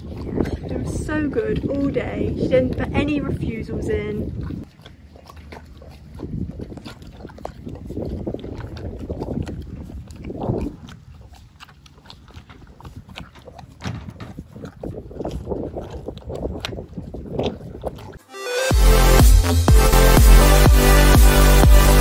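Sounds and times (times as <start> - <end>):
wind rumble on microphone: 0.0 - 4.8, 5.8 - 18.2
pony licking a tub: 0.0 - 18.2.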